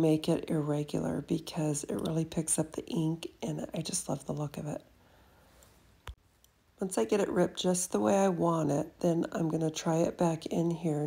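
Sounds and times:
woman speaking: 0.0s - 4.9s, 6.8s - 11.0s.

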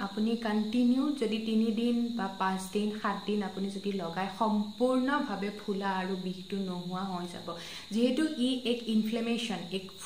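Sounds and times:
steady high-pitched whine: 0.0s - 10.0s
woman speaking: 0.0s - 10.0s.

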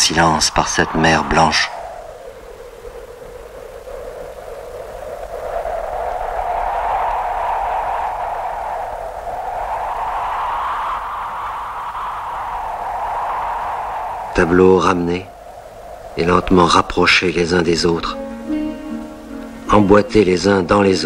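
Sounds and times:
surf rushing: 0.0s - 21.0s
wind: 0.0s - 21.0s.

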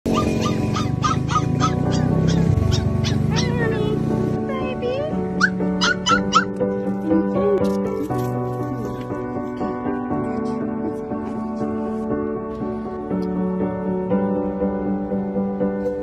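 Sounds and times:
puppy yelping: 0.1s - 3.9s, 5.3s - 6.6s
background music: 0.1s - 16.0s.

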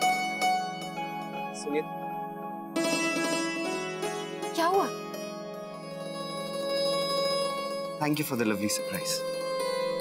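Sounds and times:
held chord background music: 0.0s - 10.0s.

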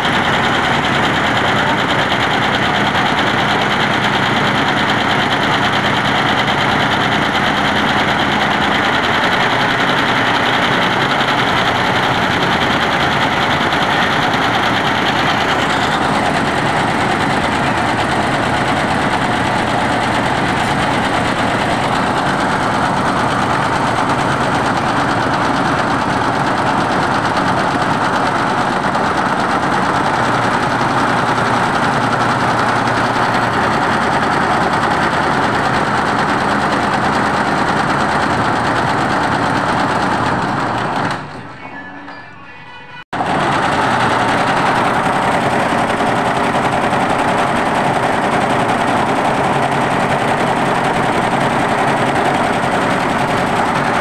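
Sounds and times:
embroidery machine chattering: 0.0s - 41.7s.

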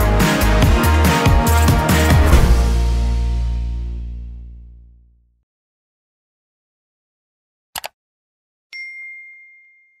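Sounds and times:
notification bell ding: 8.7s - 10.0s.

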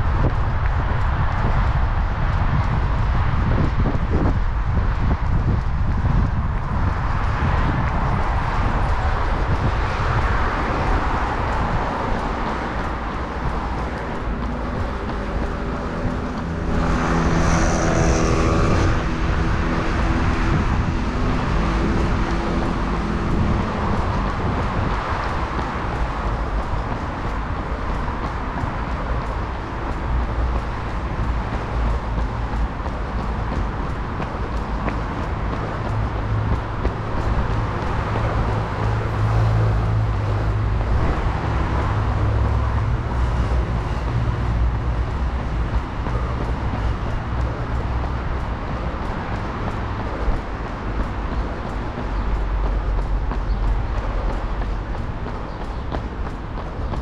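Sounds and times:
traffic rumble: 0.0s - 57.0s
vehicle engine hum: 0.0s - 57.0s.

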